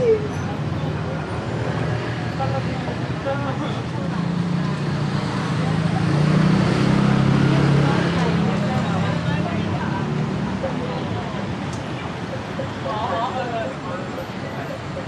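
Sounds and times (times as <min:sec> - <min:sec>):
people talking on the street: 0:00.0 - 0:15.0
road traffic: 0:00.0 - 0:15.0
vehicle engine humming: 0:00.0 - 0:15.0.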